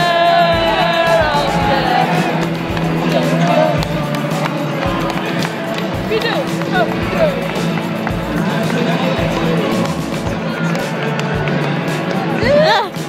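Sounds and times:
music over public address: 0.0 - 13.0
stadium crowd noise: 0.0 - 13.0.

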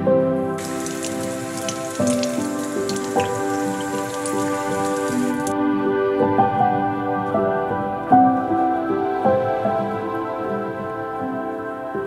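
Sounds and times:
soft background music: 0.0 - 12.0
tap water running into sink: 0.6 - 5.5.

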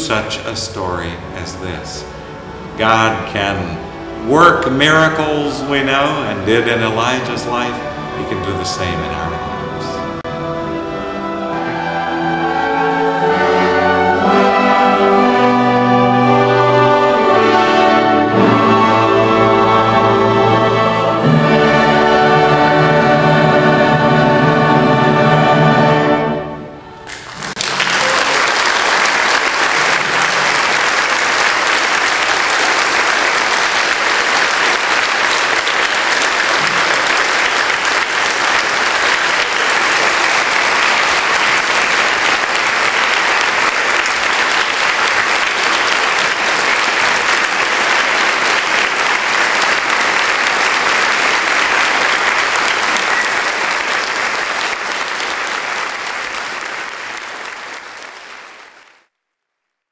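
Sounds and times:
choral and orchestral chord: 1.3 - 27.2
audience applauding: 27.0 - 59.1.

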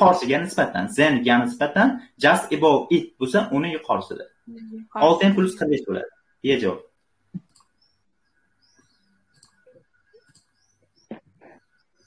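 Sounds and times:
small birds chirping: 3.0 - 12.0.

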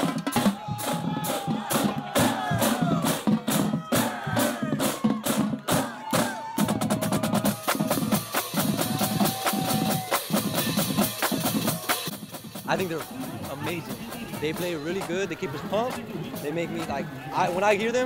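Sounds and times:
marching drum line: 0.0 - 18.0.

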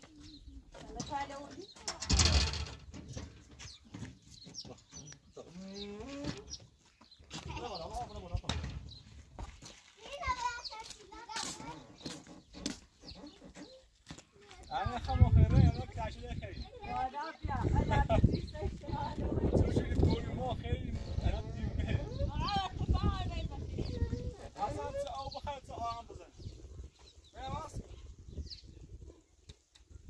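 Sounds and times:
small child's voice: 0.0 - 0.9, 9.8 - 12.2, 13.5 - 14.9, 23.8 - 25.1
people talking: 14.5 - 26.2.

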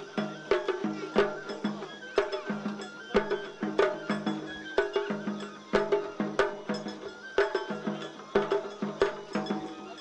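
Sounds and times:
drum strokes in repeating rhythm: 0.0 - 10.0
flute melody: 0.0 - 10.0.

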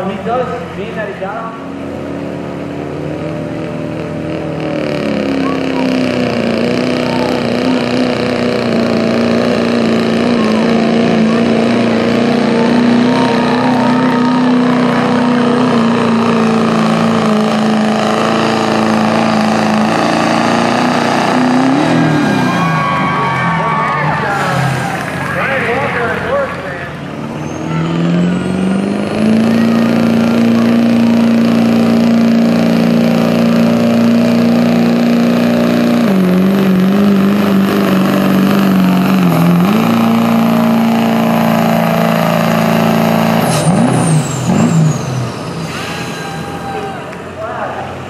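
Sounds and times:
diesel truck engine revving: 0.0 - 48.0.

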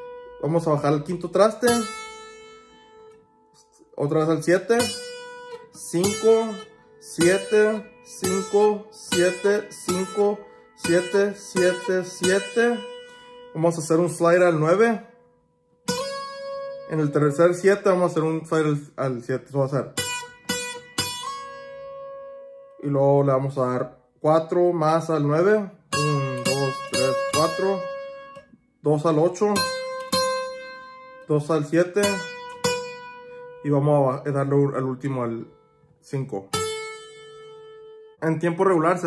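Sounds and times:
guitar string plucked: 0.0 - 14.9, 25.9 - 33.6.

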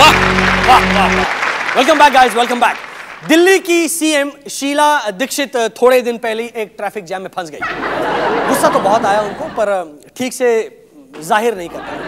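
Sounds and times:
raised voice: 0.0 - 1.3
studio applause: 0.0 - 3.7.

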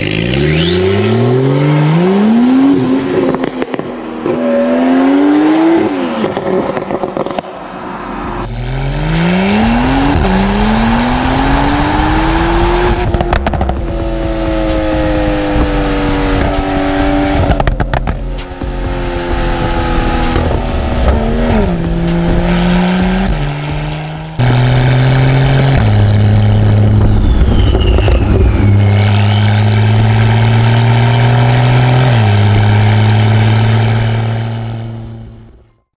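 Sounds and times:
car engine accelerating hard: 0.0 - 35.6
steady tones stepping in pitch: 0.4 - 35.6.

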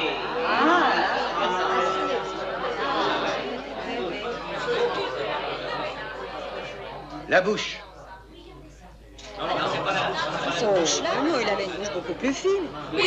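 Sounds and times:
people talking and exclaiming: 0.0 - 13.0.

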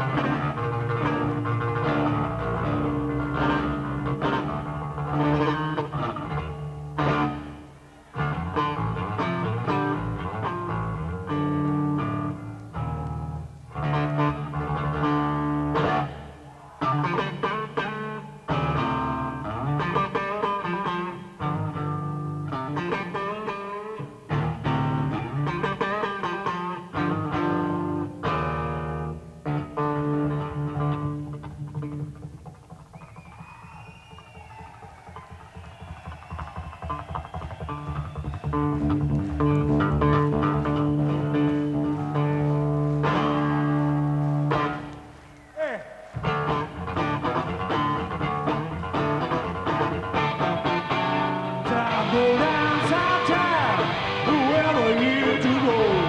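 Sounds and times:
electric bass guitar solo: 0.0 - 33.0, 37.6 - 45.1, 46.1 - 56.0
crowd whistling: 32.8 - 40.0, 43.2 - 46.8.

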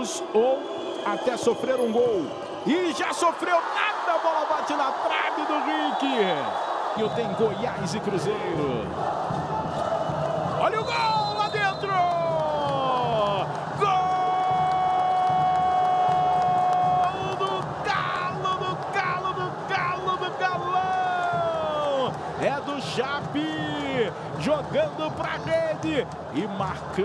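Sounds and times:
crowd cheering: 0.0 - 27.0.

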